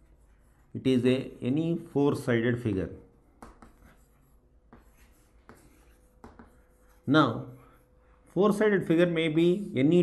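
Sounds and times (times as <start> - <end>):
chalk scratching on chalkboard: 0.0 - 1.1, 3.4 - 8.7.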